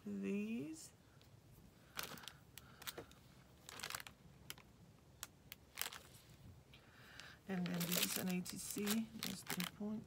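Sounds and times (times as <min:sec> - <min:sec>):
faint paper rustling: 0:01.9 - 0:04.6, 0:05.7 - 0:06.5, 0:07.1 - 0:10.0.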